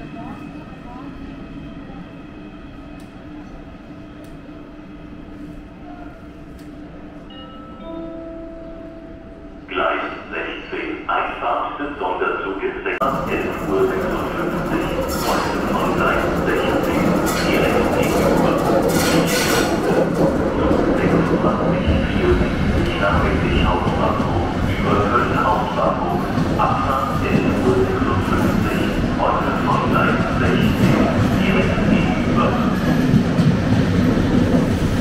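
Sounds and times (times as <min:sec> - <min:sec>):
station announcement voice: 0:06.8 - 0:33.5
train wheels rolling and clattering: 0:13.0 - 0:35.0.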